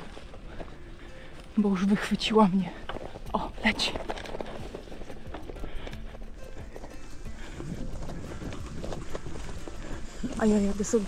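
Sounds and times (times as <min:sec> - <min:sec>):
bike clicks and rattles: 0:02.7 - 0:11.0.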